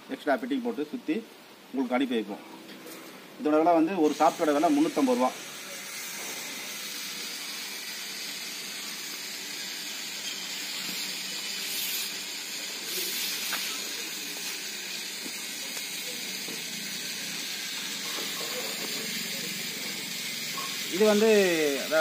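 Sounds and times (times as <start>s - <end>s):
outdoor background hiss: 0.0s - 22.0s.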